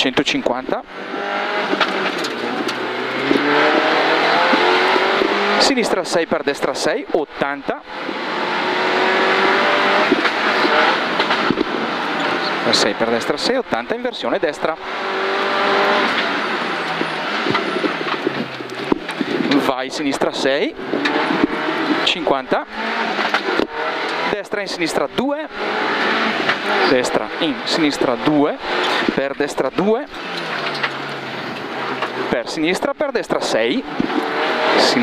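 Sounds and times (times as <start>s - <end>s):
rally car engine accelerating: 0.0s - 35.0s.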